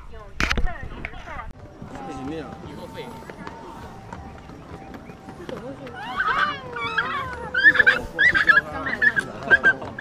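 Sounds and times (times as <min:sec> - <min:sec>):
people chattering: 0:00.7 - 0:10.0
footsteps on wooden planks: 0:01.6 - 0:10.0.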